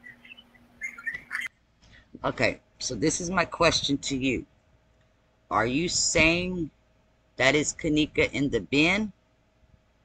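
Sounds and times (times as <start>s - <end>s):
faint bird chirps: 0.0s - 2.0s
low steady hum: 0.0s - 10.0s.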